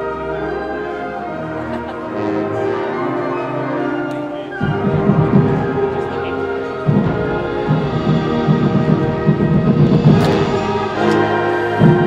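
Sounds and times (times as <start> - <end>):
wind band sustained chord: 0.0 - 12.0.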